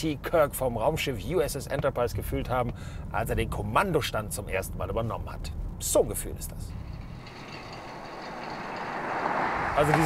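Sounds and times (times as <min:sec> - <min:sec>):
car road noise approaching: 0:01.8 - 0:10.0.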